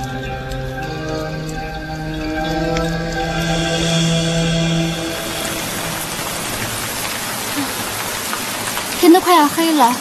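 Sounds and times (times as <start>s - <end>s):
steady rain pouring: 0.0s - 10.0s.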